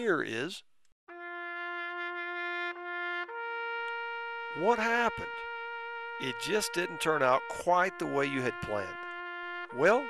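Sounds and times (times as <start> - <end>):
brass horn notes: 1.1 - 10.0.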